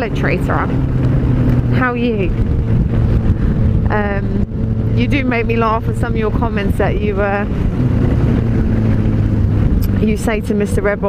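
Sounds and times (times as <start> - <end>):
motorcycle engine running: 0.0 - 11.0
wind and road noise: 0.0 - 11.0.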